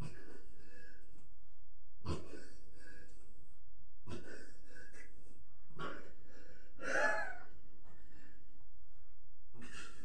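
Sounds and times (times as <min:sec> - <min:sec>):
man breathing heavily: 0:00.0 - 0:01.4, 0:02.2 - 0:03.5, 0:04.2 - 0:05.5, 0:06.1 - 0:08.7.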